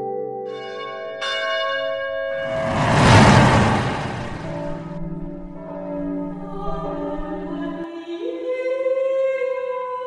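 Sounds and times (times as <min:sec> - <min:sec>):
noisy swell: 0:02.4 - 0:05.2.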